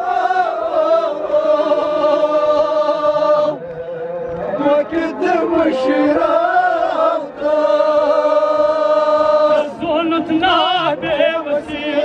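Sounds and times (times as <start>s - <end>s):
man chanting a lament: 3.5s - 6.8s, 9.0s - 12.0s.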